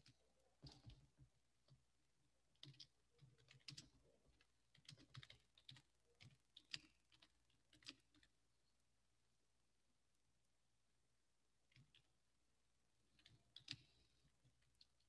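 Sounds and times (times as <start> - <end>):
typing on computer keyboard: 2.6 - 8.3, 13.2 - 14.9.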